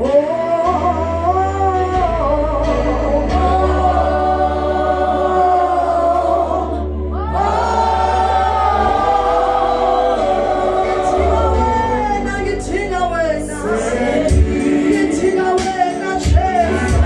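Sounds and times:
sustained low bass notes: 0:00.0 - 0:17.0
congregation singing: 0:02.6 - 0:17.0.

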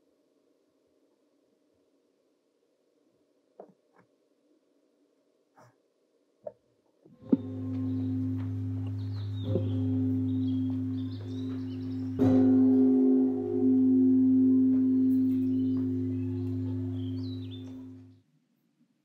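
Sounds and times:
struck bell-like ringing tones: 0:07.2 - 0:18.1.

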